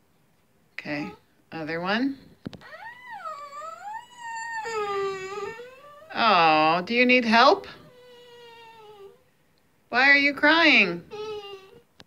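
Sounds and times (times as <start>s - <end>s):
girl crying: 2.6s - 6.2s.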